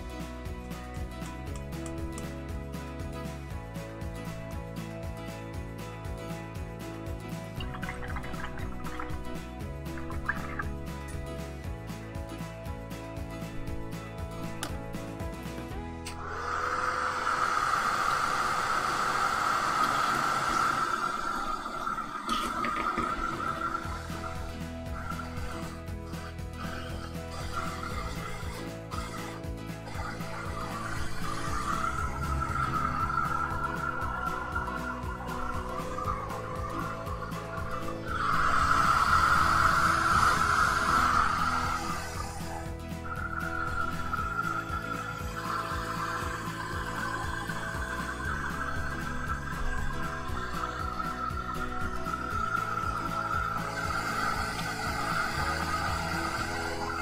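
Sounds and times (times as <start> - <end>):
hot-air dryer blowing: 16.1 - 26.0, 26.6 - 57.0.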